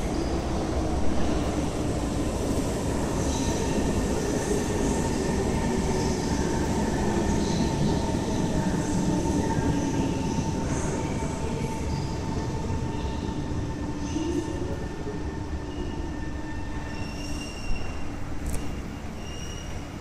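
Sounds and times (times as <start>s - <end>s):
metro train rumble: 0.0s - 20.0s.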